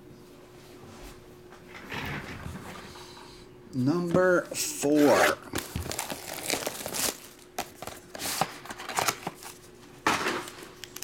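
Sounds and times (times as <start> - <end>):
foil packs rustling: 4.8 - 9.7
plastic shrink wrap crinkling: 5.5 - 9.7.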